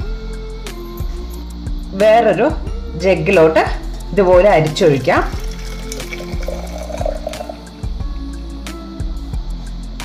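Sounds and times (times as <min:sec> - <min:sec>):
background music: 0:00.0 - 0:10.0
tea splashing into a jar: 0:05.2 - 0:07.7.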